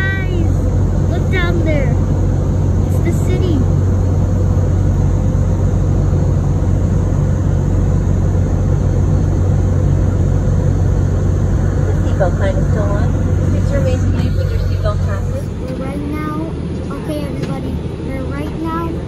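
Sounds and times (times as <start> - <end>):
airliner cabin noise: 0.0 - 19.0.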